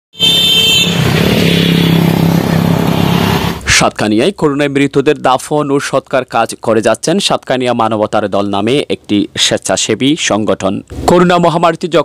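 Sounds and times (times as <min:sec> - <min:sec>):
motor scooter engine passing: 0:00.8 - 0:03.6.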